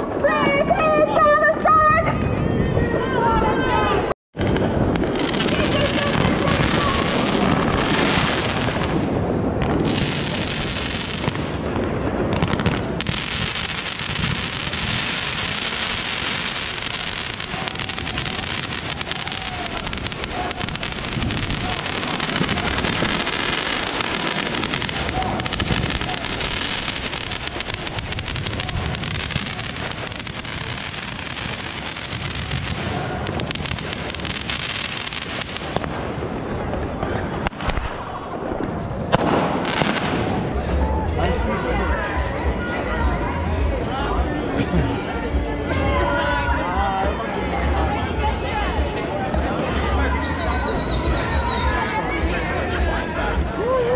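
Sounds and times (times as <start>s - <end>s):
fireworks crackling and banging: 0.0s - 53.9s.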